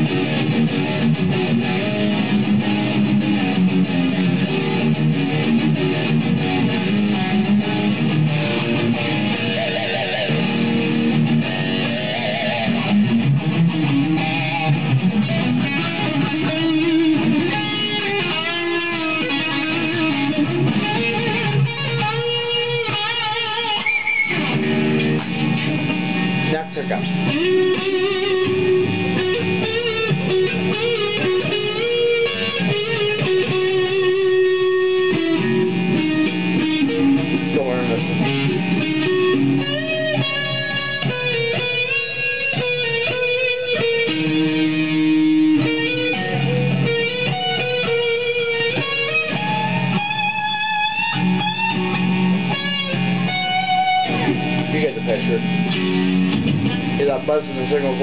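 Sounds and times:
distorted electric guitar: 0.0s - 58.0s.

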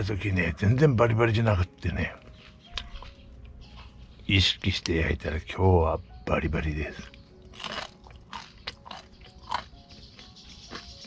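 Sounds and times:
crunching and chewing toast: 7.0s - 11.0s.

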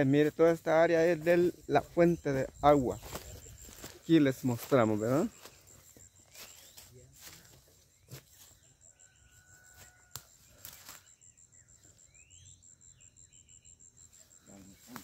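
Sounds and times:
insect trilling: 0.0s - 15.0s.

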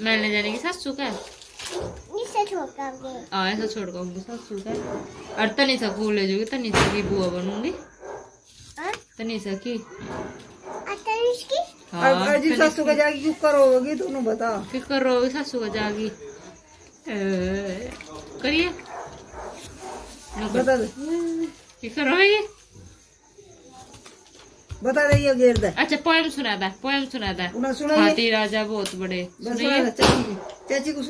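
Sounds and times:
child speaking in broken phrases: 2.1s - 3.3s, 8.8s - 9.1s, 10.8s - 11.9s.

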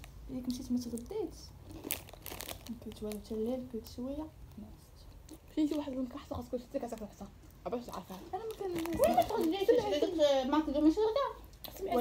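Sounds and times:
plastic snack packet crinkling: 0.0s - 4.6s, 5.3s - 10.2s.

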